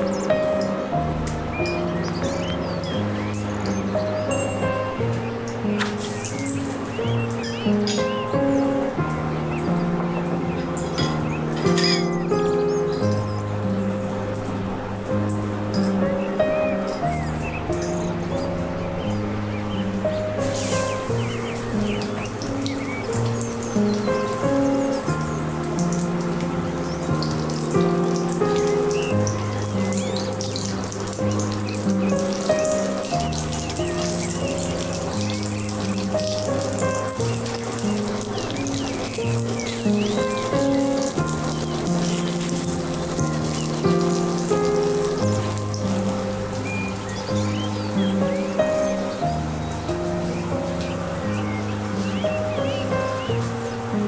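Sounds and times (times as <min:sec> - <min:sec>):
background music of held notes: 0:00.0 - 0:54.0
vegetables sizzling in hot oil: 0:05.6 - 0:08.6, 0:20.4 - 0:50.1.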